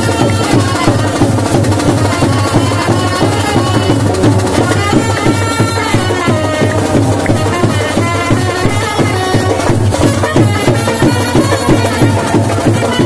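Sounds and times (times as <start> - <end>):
traditional music with fast drumming: 0.0 - 13.0.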